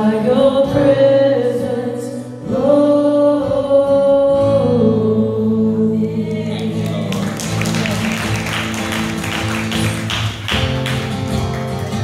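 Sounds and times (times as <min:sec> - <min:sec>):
electric guitar: 0:00.0 - 0:12.0
fast-strummed acoustic guitar: 0:06.7 - 0:12.0.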